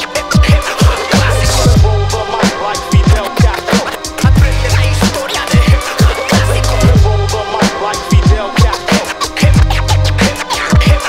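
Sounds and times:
hip hop drum beat with bass: 0.0s - 11.0s
turntable scratching: 0.0s - 11.0s.

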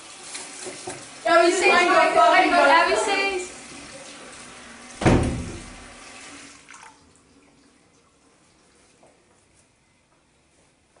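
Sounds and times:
running water hiss: 0.0s - 6.7s
heavy booming thump: 5.0s - 5.8s.

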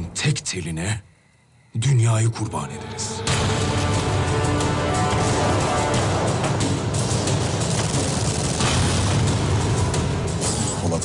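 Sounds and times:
trailer music: 2.2s - 11.0s
gunfire: 7.6s - 9.6s.

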